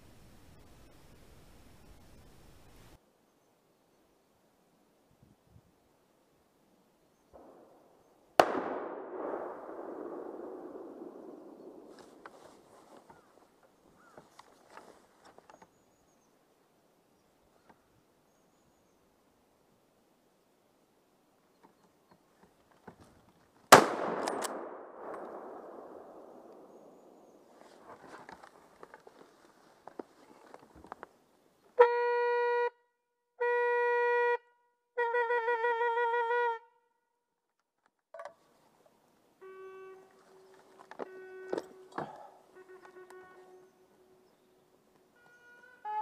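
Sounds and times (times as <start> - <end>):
gunshot with long echo: 7.4 - 12.2, 23.7 - 27.5.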